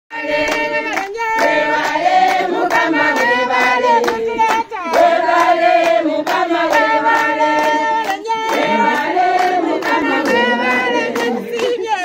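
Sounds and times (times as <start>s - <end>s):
group of people singing: 0.1s - 12.0s
hands clapping in time: 0.3s - 12.0s.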